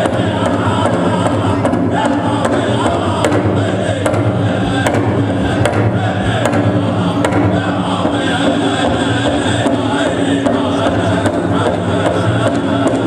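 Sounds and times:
group singing in unison: 0.0 - 13.0
large drum beating: 0.0 - 13.0.

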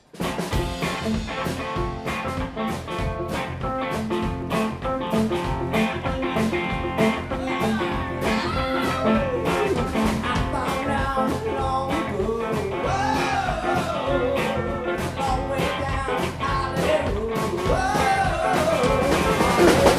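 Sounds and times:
live rock band playing: 0.0 - 19.9
pedal steel guitar: 0.6 - 16.7
man singing lead vocal: 7.2 - 19.9.

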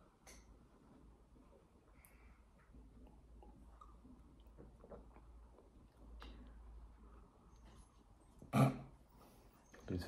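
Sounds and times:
throaty vocal noise: 8.5 - 9.0.

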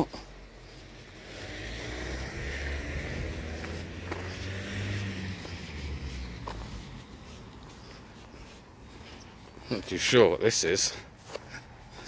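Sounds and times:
road vehicle passing: 0.0 - 12.0.

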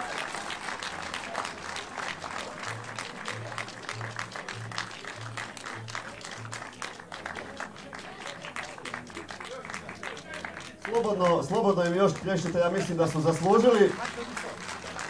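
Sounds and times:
audience applauding: 0.0 - 15.0.

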